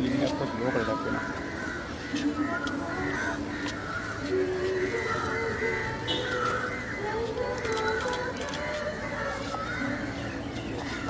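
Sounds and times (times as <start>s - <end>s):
crowd voices: 0.0s - 11.0s
crows cawing: 0.0s - 11.0s.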